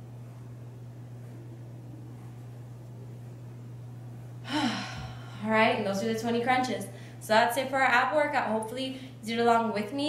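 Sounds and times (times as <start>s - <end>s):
steady low hum: 0.0s - 10.0s
woman gasping sigh: 4.4s - 5.4s.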